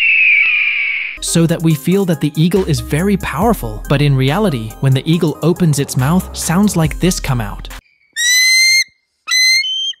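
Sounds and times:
eagle whistled calls: 0:08.2 - 0:10.0.

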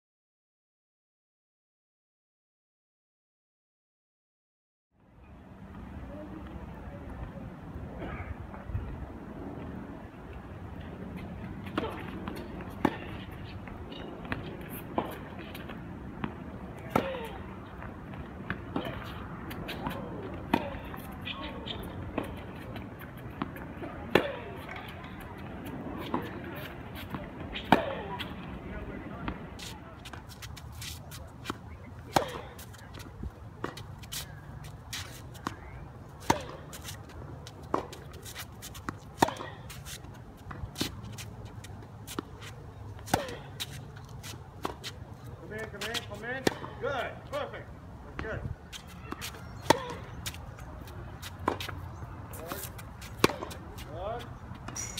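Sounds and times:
tennis ball struck by rackets: 0:11.6 - 0:13.3, 0:13.9 - 0:17.4, 0:18.1 - 0:28.5, 0:29.2 - 0:37.0, 0:37.7 - 0:41.3, 0:42.1 - 0:45.0, 0:48.2 - 0:53.9.

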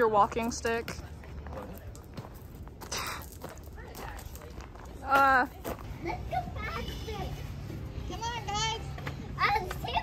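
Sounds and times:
footsteps on gravel: 0:00.2 - 0:07.6.

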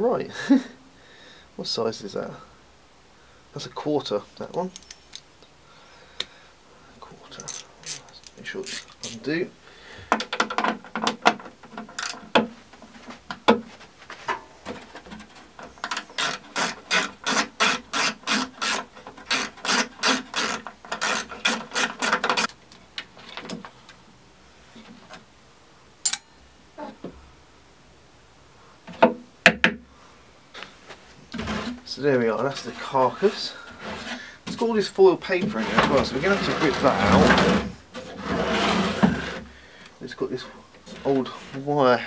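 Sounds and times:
hand ratchet clicking: 0:07.4 - 0:09.2.

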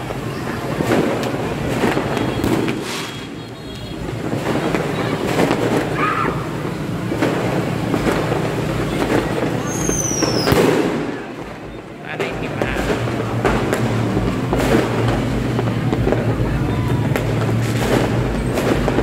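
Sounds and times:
fireworks and firecrackers banging: 0:00.0 - 0:19.0
falling firework whistle: 0:01.8 - 0:06.6, 0:08.9 - 0:11.2.

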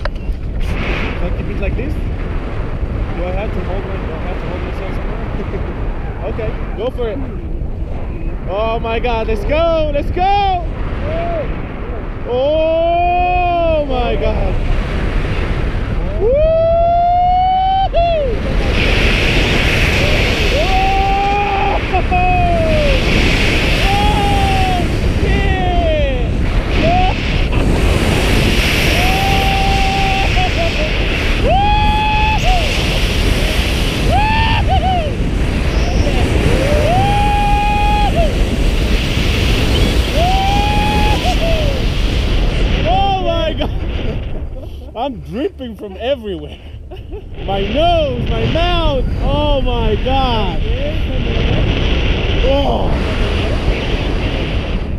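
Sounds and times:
heavy wind rush on microphone: 0:00.0 - 0:54.9
person screaming: 0:20.5 - 0:23.0, 0:23.7 - 0:26.2, 0:26.8 - 0:27.2, 0:28.8 - 0:32.8, 0:34.0 - 0:35.3, 0:36.3 - 0:38.4, 0:40.1 - 0:41.8.

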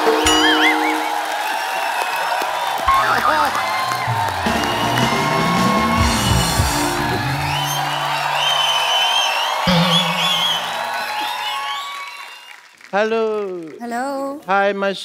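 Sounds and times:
audience cheering and whooping: 0:00.0 - 0:12.8
show music with bass line: 0:02.9 - 0:08.4, 0:09.7 - 0:10.8.

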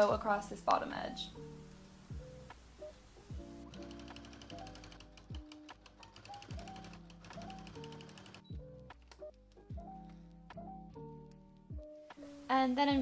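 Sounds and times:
background music with soft beat: 0:00.0 - 0:13.0
sewing machine rattling: 0:03.9 - 0:08.5.

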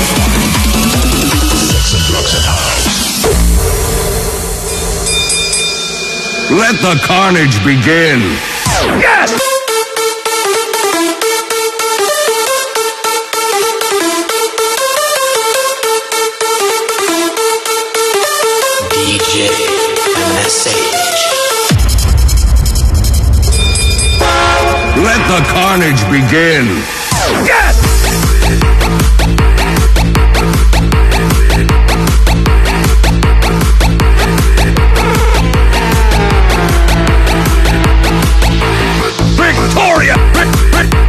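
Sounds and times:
electronic dance music: 0:00.0 - 0:21.8, 0:24.3 - 0:41.0
held horn-like chord: 0:24.2 - 0:27.0, 0:33.9 - 0:40.6
pitch-bent voice sample swooping: 0:34.0 - 0:40.7.

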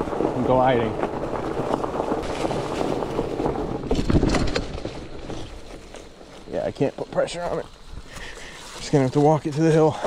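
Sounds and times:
bike clattering jolt: 0:00.0 - 0:06.5
bike rattling: 0:00.0 - 0:10.0
bike tyres rolling over dry leaves: 0:00.0 - 0:10.0.

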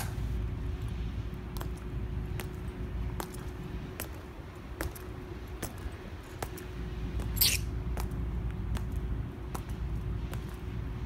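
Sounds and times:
faint steady hum: 0:00.0 - 0:11.0
low outdoor rumble: 0:00.0 - 0:11.0.

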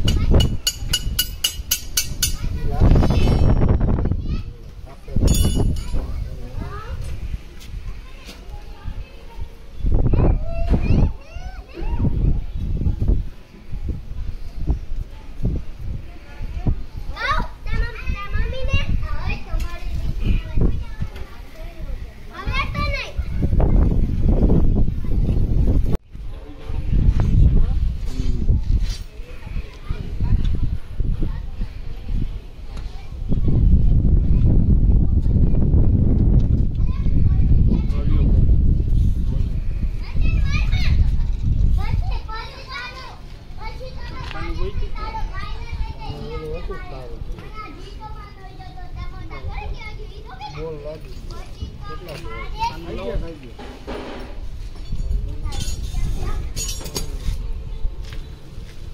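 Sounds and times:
voices talking: 0:00.0 - 0:35.8, 0:36.8 - 0:58.8
children calling out: 0:06.6 - 0:13.8, 0:39.5 - 0:53.0.

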